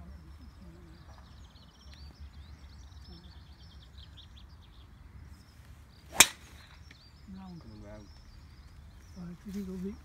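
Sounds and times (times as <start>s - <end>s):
birds chirping faintly: 0.0s - 10.0s
golf club striking ball: 6.1s - 7.0s.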